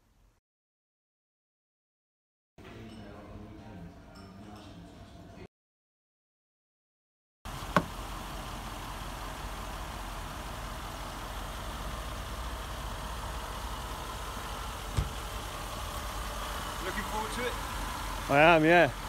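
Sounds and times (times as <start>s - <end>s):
car engine idling: 7.5s - 19.0s.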